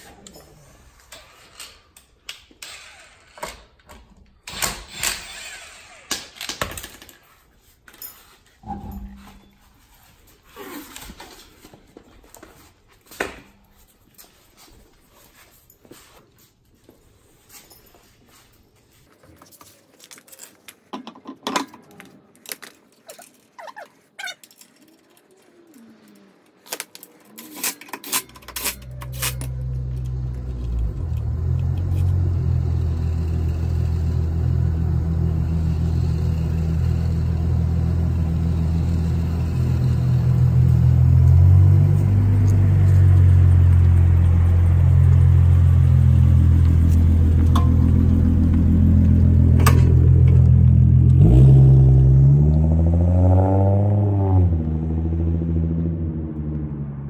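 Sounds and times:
car engine running and revving: 0:28.8 - 0:57.0.

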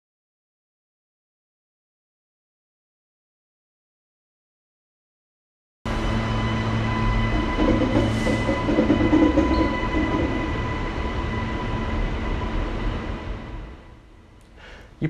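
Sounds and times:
train wheels rumbling on rails: 0:05.9 - 0:14.2.

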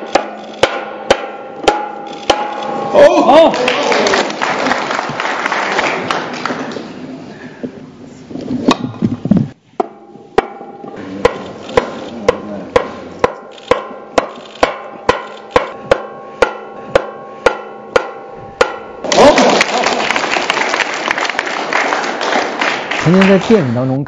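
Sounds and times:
sharp percussive strikes: 0:00.0 - 0:03.2, 0:09.8 - 0:19.3
crowd applauding: 0:03.3 - 0:07.1, 0:19.0 - 0:24.0.

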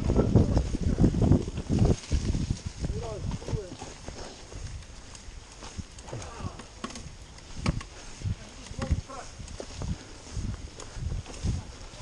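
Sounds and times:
mountain bike rattling over trail: 0:00.0 - 0:12.0
tyre noise: 0:00.0 - 0:12.0.

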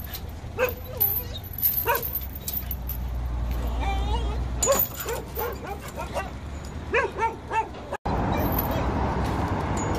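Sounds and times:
dog whining and yipping: 0:00.6 - 0:02.7, 0:04.0 - 0:08.5.

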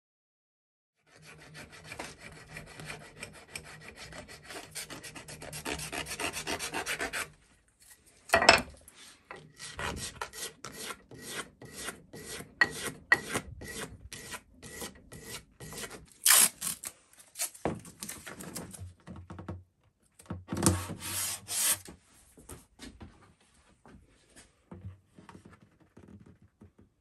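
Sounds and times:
sanding plastic edge: 0:01.2 - 0:07.3, 0:20.7 - 0:21.9.

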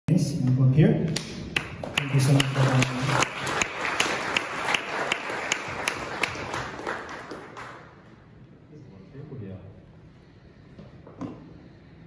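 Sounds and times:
nearby person clapping: 0:01.1 - 0:07.8
audience applauding: 0:01.6 - 0:08.1.

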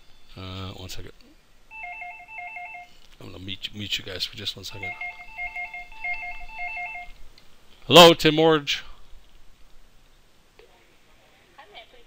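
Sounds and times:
electronic telephone ringing: 0:01.7 - 0:02.9, 0:04.8 - 0:07.1.

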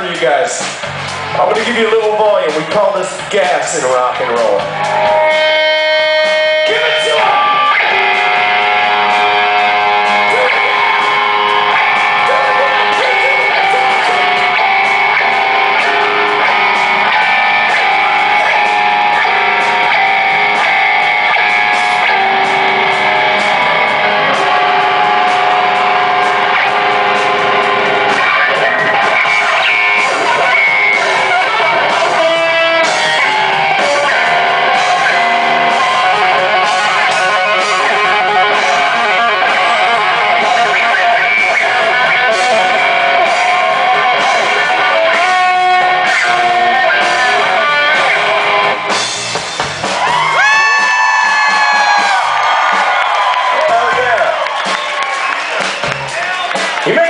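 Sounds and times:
distorted electric guitar lead: 0:00.0 - 0:57.0.

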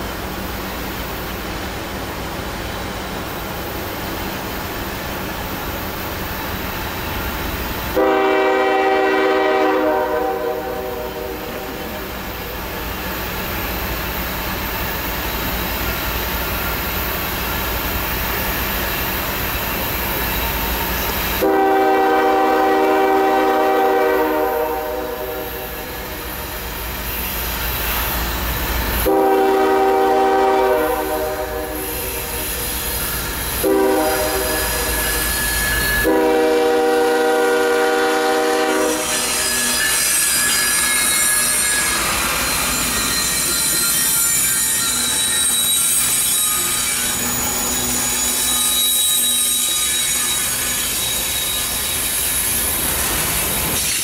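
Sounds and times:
train wheels rushing past: 0:00.0 - 0:54.0
locomotive air horn blasts: 0:07.9 - 0:12.1, 0:21.4 - 0:26.0, 0:29.0 - 0:32.1, 0:33.6 - 0:34.9, 0:35.8 - 0:39.9.

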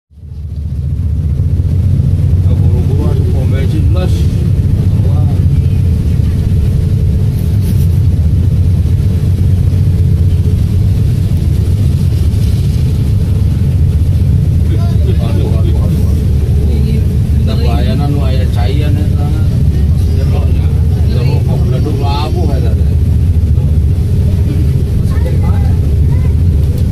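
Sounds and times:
vehicle engine and road noise: 0:00.1 - 0:26.9.

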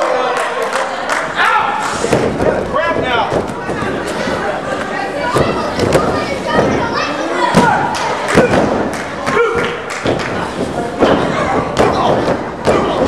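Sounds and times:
people shouting: 0:01.4 - 0:01.9, 0:05.2 - 0:09.8, 0:11.1 - 0:13.0
bodies thudding on ring canvas: 0:05.3 - 0:13.0.

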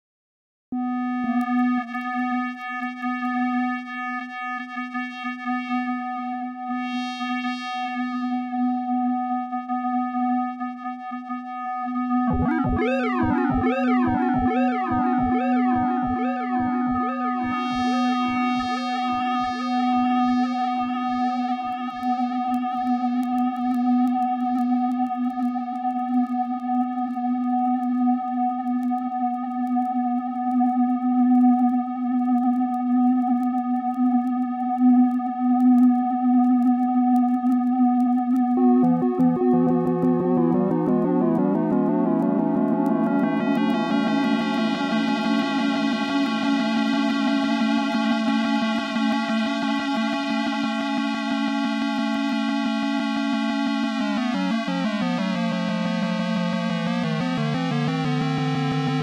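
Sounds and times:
buzzy square-wave synth drone: 0:00.8 - 0:28.4, 0:36.6 - 0:59.0
falling synth filter sweep echoes: 0:12.0 - 0:19.0, 0:38.6 - 0:50.4
high steady synth tone: 0:12.3 - 0:18.2.

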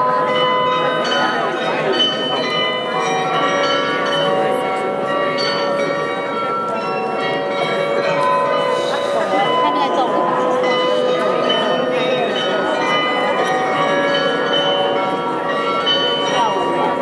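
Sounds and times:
glockenspiel bells playing a tune: 0:00.0 - 0:17.0.

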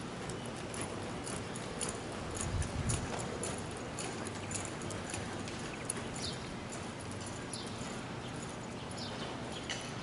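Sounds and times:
horse hoofbeats on soft dirt: 0:00.0 - 0:10.0.

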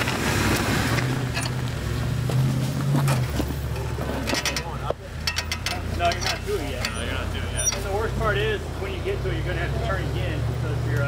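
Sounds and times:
vehicle engine running: 0:00.0 - 0:11.0
sharp clicks and knocks: 0:03.0 - 0:07.9
indistinct voices: 0:03.7 - 0:11.0.

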